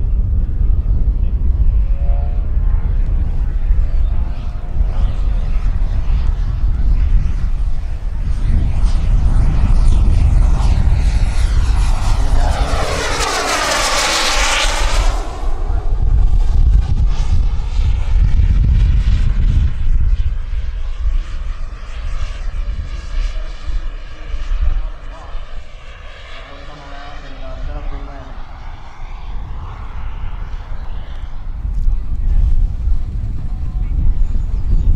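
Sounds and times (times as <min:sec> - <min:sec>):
model jet turbine whine: 0:00.0 - 0:34.9
wind rumble on microphone: 0:00.0 - 0:34.9.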